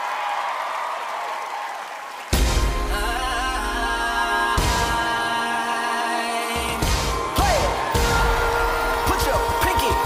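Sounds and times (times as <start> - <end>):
audience applauding: 0.0 - 3.7.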